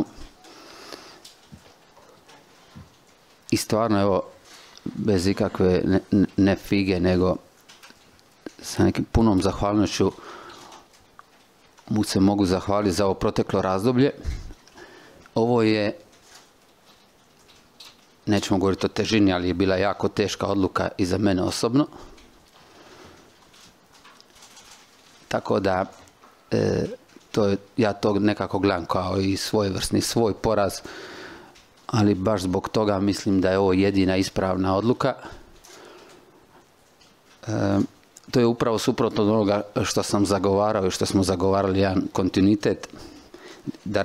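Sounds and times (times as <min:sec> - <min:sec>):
soft scattered small sounds: 0:00.0 - 0:44.0
breath: 0:00.4 - 0:01.3, 0:10.2 - 0:10.9, 0:14.2 - 0:15.3, 0:22.0 - 0:23.3, 0:30.8 - 0:31.6, 0:35.2 - 0:36.6, 0:42.9 - 0:43.7.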